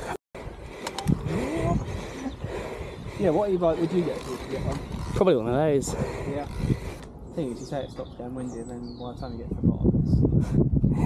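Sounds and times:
wind rushing: 0.4s - 11.0s.

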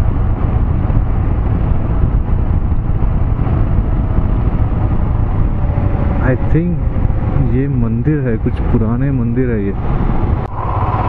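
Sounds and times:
motorcycle engine: 0.0s - 7.8s, 10.0s - 11.0s
low wind rumble: 0.0s - 11.0s.

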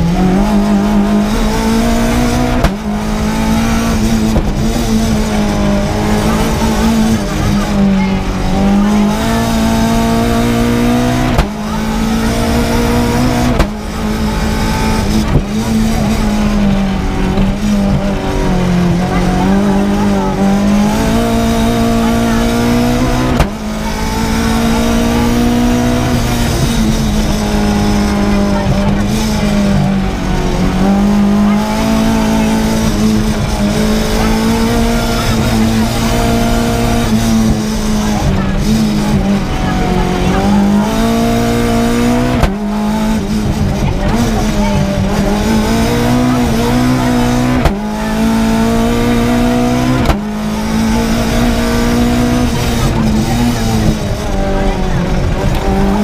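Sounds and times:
car engine at high revs: 0.0s - 56.0s.

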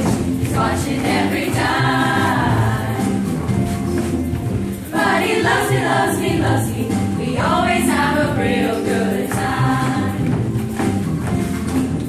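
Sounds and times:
women's choir singing pop song: 0.0s - 3.7s, 4.7s - 10.8s.

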